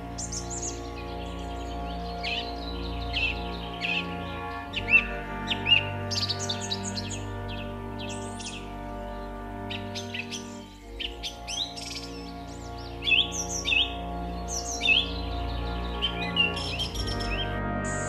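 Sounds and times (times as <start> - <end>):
birds chirping: 0.0 - 18.0
held music chords: 0.0 - 18.0.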